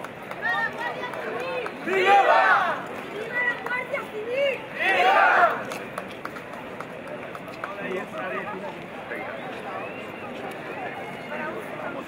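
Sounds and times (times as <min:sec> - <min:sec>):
murmur of people chatting: 0:00.0 - 0:12.0.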